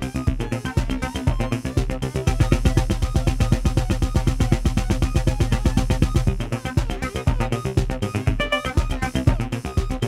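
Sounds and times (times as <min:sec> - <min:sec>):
pulsing synthesizer notes: 0:08.1 - 0:09.6
steady low bass tone: 0:08.4 - 0:09.3.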